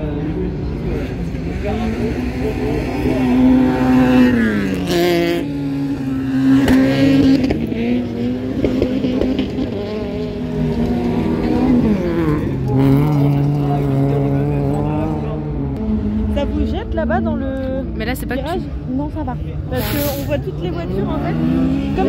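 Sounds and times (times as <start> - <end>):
racing car engines: 0.0 - 22.0.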